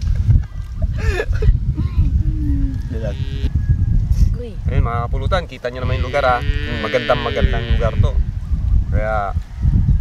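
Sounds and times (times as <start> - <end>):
wind rumbling on microphone: 0.0 - 10.0
group laughing: 0.8 - 1.6.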